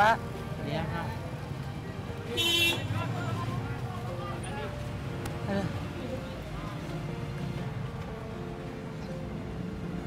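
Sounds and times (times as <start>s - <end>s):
street traffic noise: 0.0s - 10.0s
vehicle horn toot: 2.4s - 2.9s.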